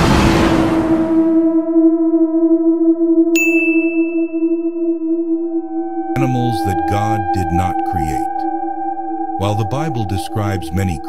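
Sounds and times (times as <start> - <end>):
low ringing bell-like tone: 3.3 - 7.5
short bright ding: 3.4 - 4.6.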